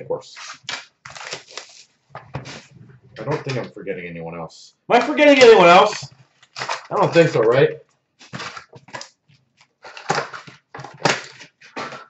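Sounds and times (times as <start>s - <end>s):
wrapper crinkling: 0.4s - 3.7s, 5.2s - 12.0s
cards shuffled and set down: 5.9s - 12.0s.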